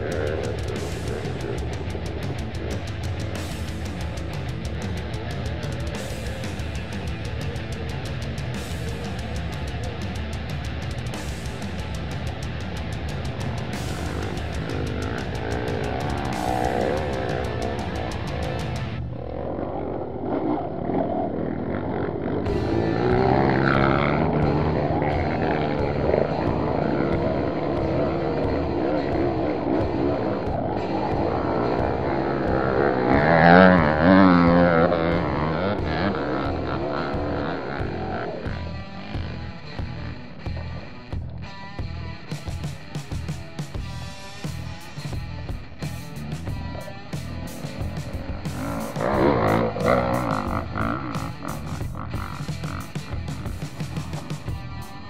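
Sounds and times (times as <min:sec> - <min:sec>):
background music: 0:00.0 - 0:55.0
motorcycle engine revving: 0:00.0 - 0:55.0
wavering pitched part: 0:00.0 - 0:55.0.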